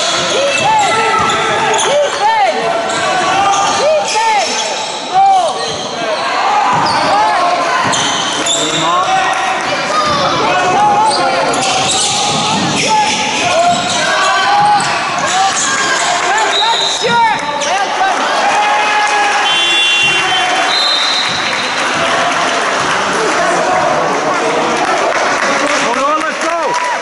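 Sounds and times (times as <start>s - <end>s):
shoes squeaking on floor: 0.0s - 9.1s, 9.7s - 17.9s
voices calling out: 0.0s - 24.8s.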